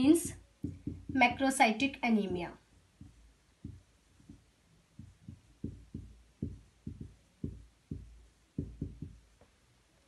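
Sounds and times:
soft low thumps: 0.0 - 1.6, 2.6 - 9.6.

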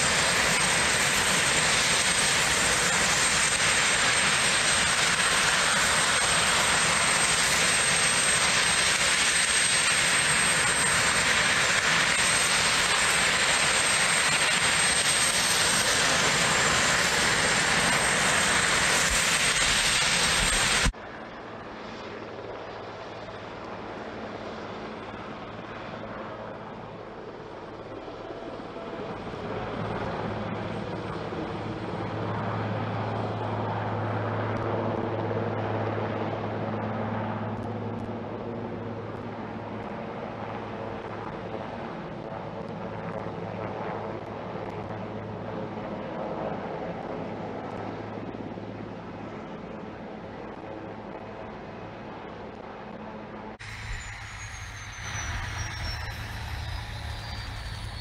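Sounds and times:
distant helicopter rotor drone: 0.0 - 58.0
helicopter turbine whine: 0.0 - 58.0.

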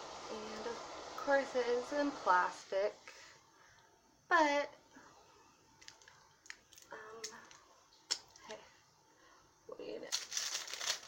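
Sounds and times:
plastic crinkling and tearing: 10.0 - 11.0
plastic wrapping clicks and rustles: 10.0 - 11.0.

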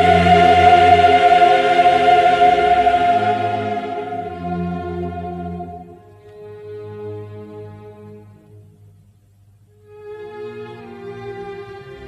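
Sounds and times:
choir and orchestra sustained chord: 0.0 - 8.0.

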